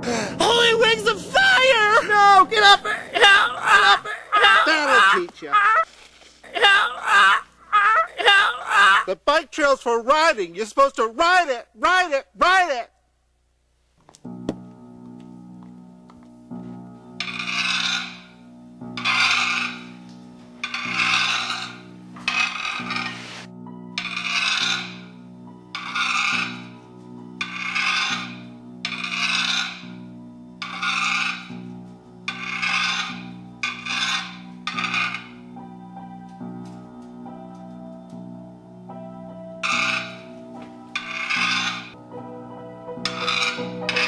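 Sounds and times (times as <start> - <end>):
background music with held chords: 0.0 - 4.0, 14.1 - 44.0
rasping strokes: 16.6 - 35.9, 39.6 - 42.0, 43.0 - 44.0.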